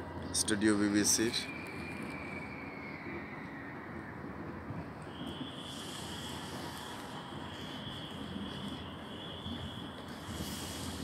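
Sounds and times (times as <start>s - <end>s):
faint high whine: 0.0s - 11.0s
low city rumble: 0.0s - 11.0s
hiss: 5.6s - 11.0s.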